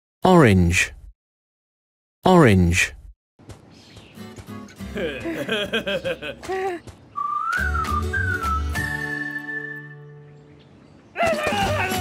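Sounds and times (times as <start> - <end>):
whistled tune: 7.1 - 10.3
cartoon character babbling: 11.2 - 12.0.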